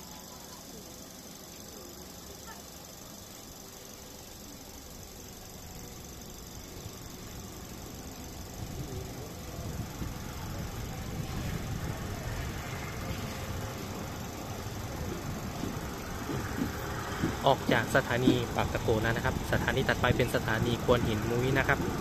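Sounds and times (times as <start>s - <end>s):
train wheels rumbling on rails: 10.0s - 22.0s.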